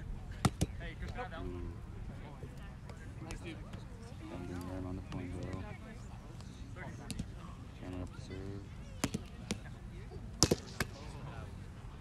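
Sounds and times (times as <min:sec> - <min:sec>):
ball striking net: 0:10.4 - 0:11.1.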